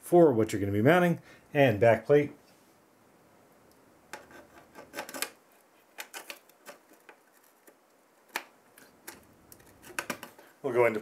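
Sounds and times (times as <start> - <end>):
small clicks and taps: 6.0 - 10.5.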